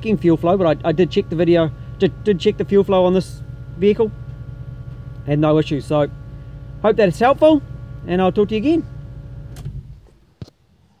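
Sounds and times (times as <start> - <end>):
engine idling low rumble: 0.0 - 11.0.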